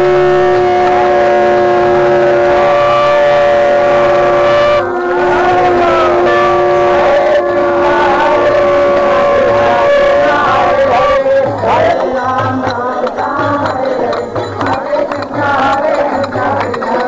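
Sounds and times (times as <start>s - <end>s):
conch shells blowing: 0.0s - 17.0s.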